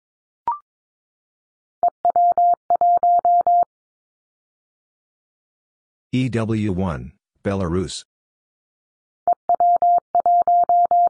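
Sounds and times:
morse code tone: 2.1s - 3.7s, 9.3s - 11.0s.

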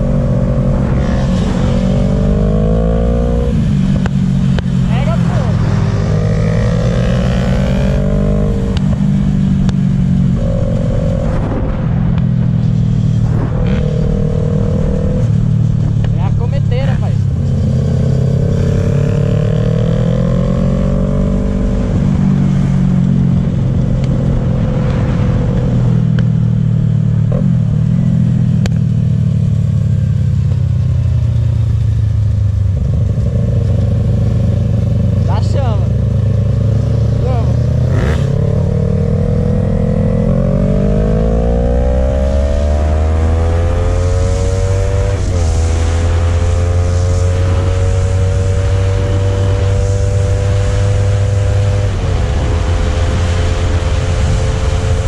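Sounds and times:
motorcycle engine accelerating: 0.0s - 55.0s
wind and road noise: 0.0s - 55.0s.

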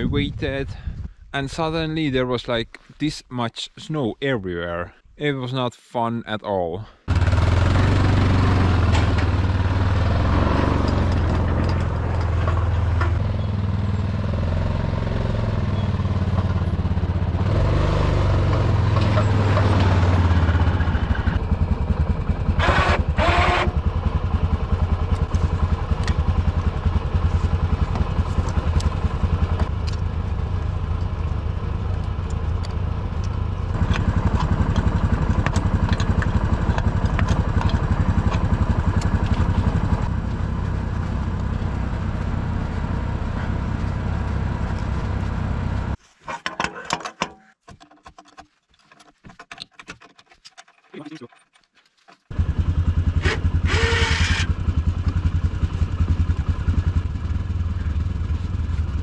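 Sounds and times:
atv engine idling: 7.1s - 46.0s, 52.3s - 59.0s
metal clicks and knocks: 10.8s - 13.2s, 46.3s - 52.3s.

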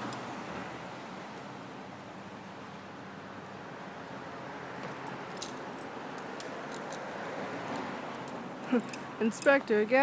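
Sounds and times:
metal climbing hardware clinking: 4.8s - 7.1s, 7.7s - 9.7s.

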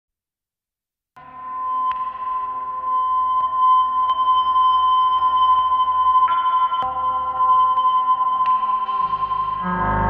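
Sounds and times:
ambient bass drone: 9.0s - 10.0s.

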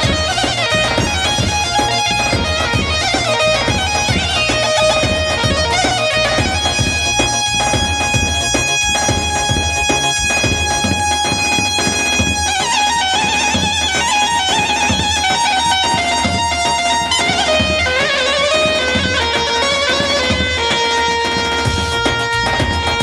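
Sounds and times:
dance music over loudspeakers: 0.0s - 23.0s
ornamented melody: 0.0s - 23.0s
steady drum beat: 0.0s - 23.0s.

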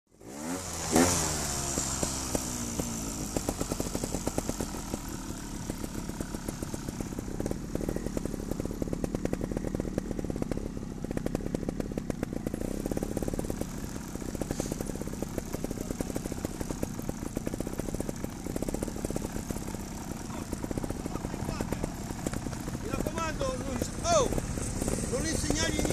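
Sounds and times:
motorcycle engine revving: 0.1s - 25.9s.

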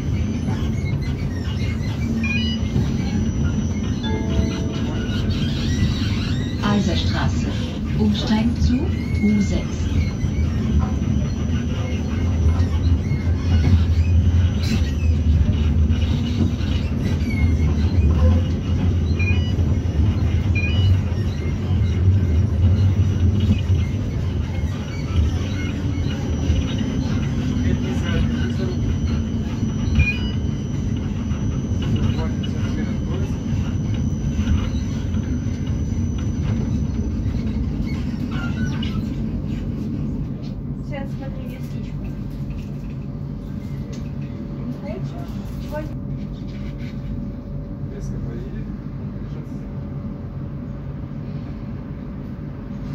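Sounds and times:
tram rumble: 0.0s - 52.9s.

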